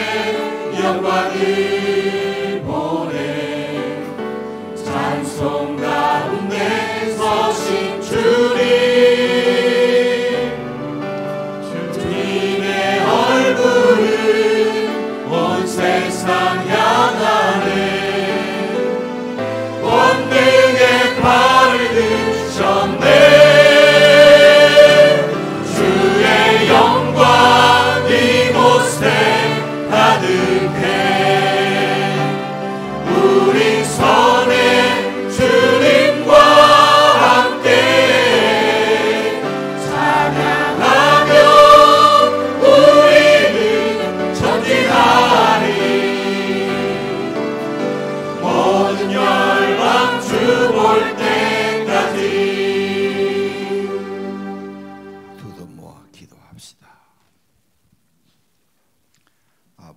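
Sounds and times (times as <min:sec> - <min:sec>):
choir singing worship song: 0:00.0 - 0:55.8
instrumental accompaniment: 0:00.0 - 0:56.2.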